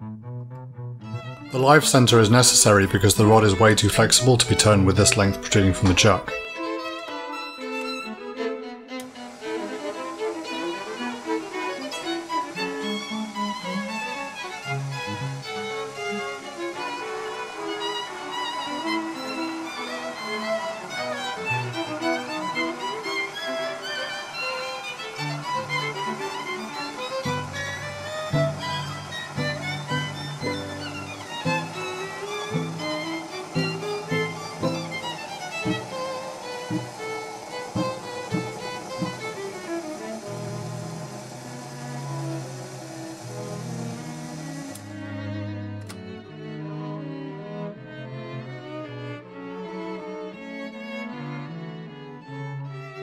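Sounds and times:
classical string trio: 0:00.0 - 0:53.0.

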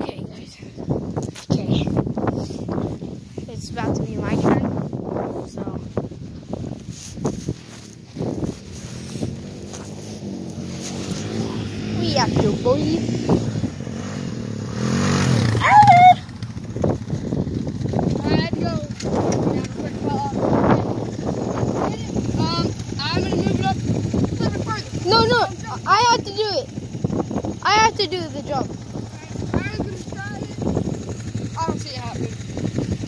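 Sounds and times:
atv engine revving: 0:01.6 - 0:33.0
indistinct voices: 0:15.2 - 0:16.3.

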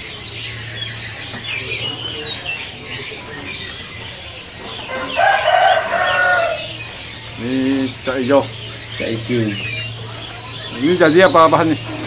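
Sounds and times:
drawn-out bird call: 0:00.0 - 0:12.0
high bird chirps: 0:00.0 - 0:12.0.

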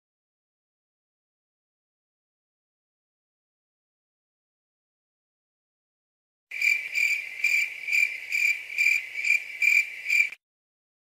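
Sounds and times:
crickets chirping: 0:06.5 - 0:10.4.

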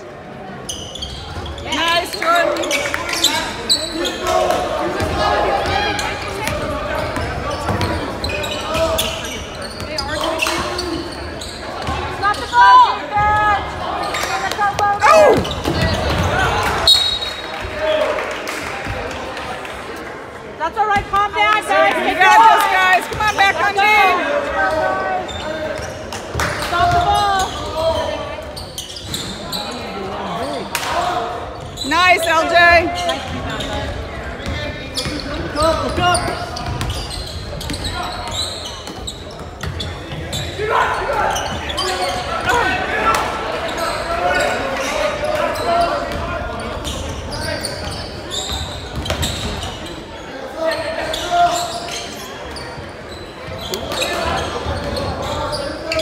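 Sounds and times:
spectators' voices and calls: 0:00.0 - 0:56.0.

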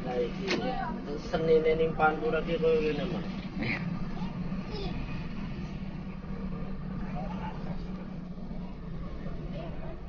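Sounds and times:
bus engine droning: 0:00.0 - 0:10.0.

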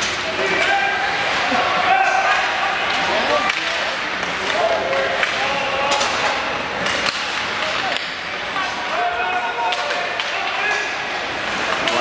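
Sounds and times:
hockey sticks clacking: 0:00.0 - 0:12.0.

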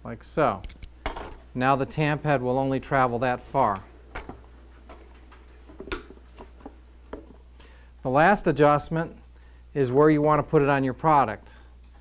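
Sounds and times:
steady low hum: 0:00.0 - 0:12.0.

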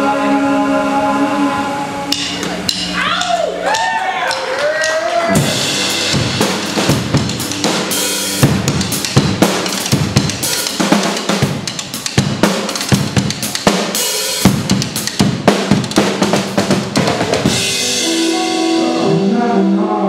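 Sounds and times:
drum kit played hard: 0:02.0 - 0:20.0
held electric guitar chords: 0:05.3 - 0:10.5, 0:17.3 - 0:20.0.

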